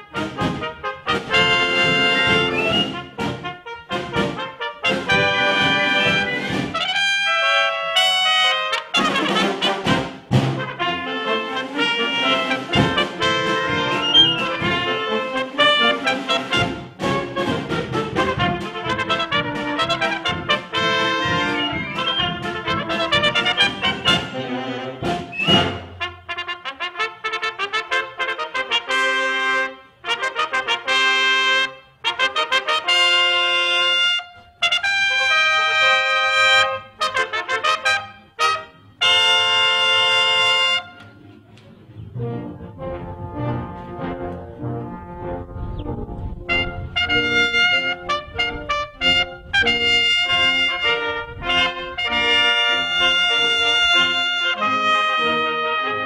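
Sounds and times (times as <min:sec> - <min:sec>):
sustained brass chords: 0:00.0 - 0:41.2, 0:42.0 - 0:56.0
concert band with trumpets: 0:00.0 - 0:56.0.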